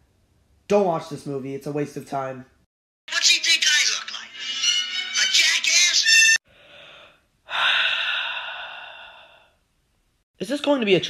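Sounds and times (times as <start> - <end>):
person sighing: 6.6 - 9.5.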